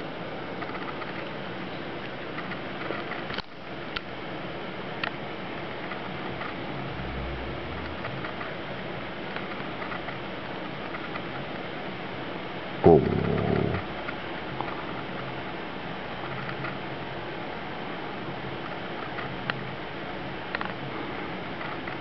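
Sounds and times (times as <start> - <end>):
steady low hiss: 3.5 - 22.0.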